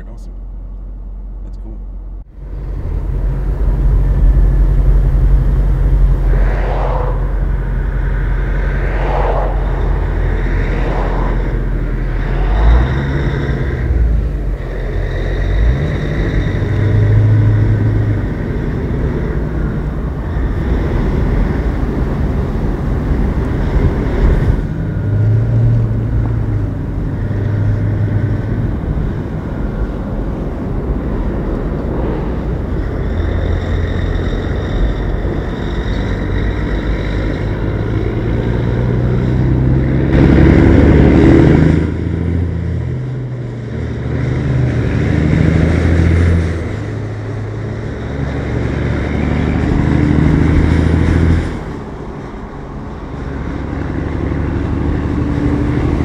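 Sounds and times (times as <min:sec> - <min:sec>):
diesel truck engine drone: 0:00.0 - 0:56.0
road rumble: 0:00.0 - 0:56.0.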